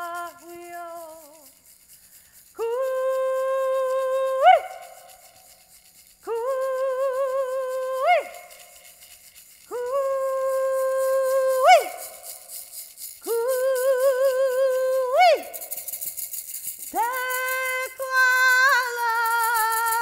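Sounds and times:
wooden hand rattle: 0:00.0 - 0:20.0
woman singing held notes: 0:16.9 - 0:20.0.

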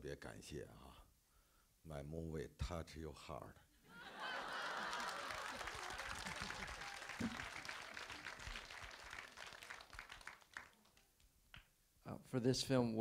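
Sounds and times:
audience applauding: 0:04.2 - 0:11.2.

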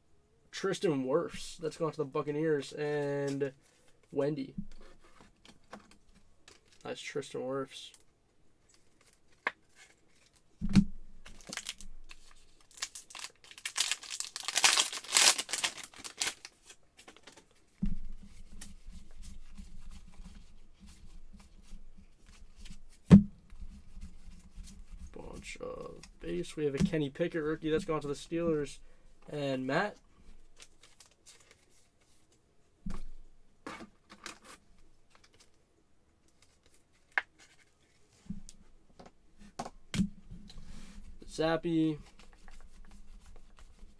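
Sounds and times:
trading cards rustling: 0:11.2 - 0:17.6, 0:30.6 - 0:32.3
foil pack tearing and crinkling: 0:11.4 - 0:17.3.

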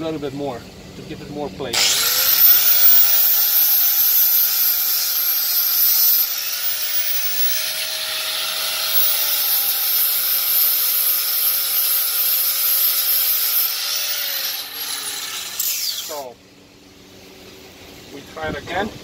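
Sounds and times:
angle grinder grinding metal: 0:01.8 - 0:16.3
grinder winding down: 0:01.8 - 0:16.3.

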